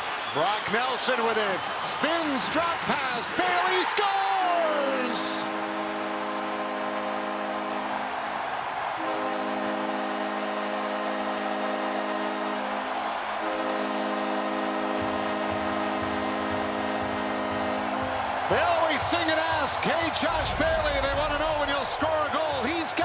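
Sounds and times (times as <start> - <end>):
crowd cheering: 0.0 - 23.0
goal horn blasts: 4.5 - 8.2, 8.9 - 18.9.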